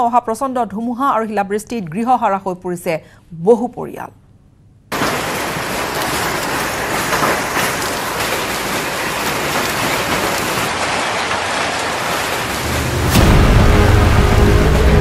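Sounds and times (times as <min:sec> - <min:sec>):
rain and hail falling: 0:04.9 - 0:15.0.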